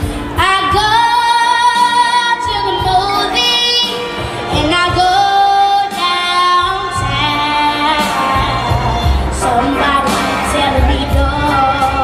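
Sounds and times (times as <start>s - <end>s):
girl singing: 0.4s - 8.8s, 9.4s - 12.0s.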